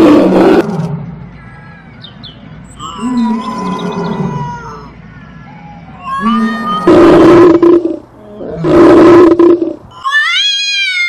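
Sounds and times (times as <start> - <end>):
lion roaring: 0.0 - 1.1, 6.2 - 9.8.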